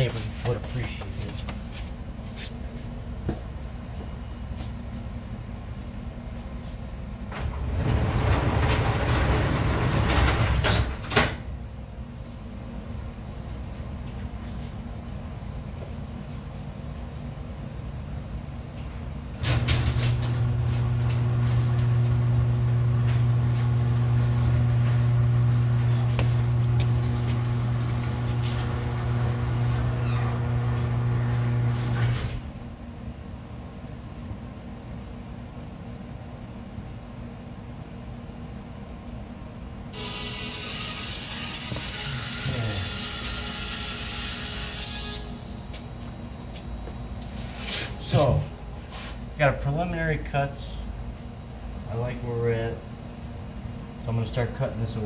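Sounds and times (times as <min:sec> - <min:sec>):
machine humming: 0:19.3 - 0:32.4, 0:39.9 - 0:47.2.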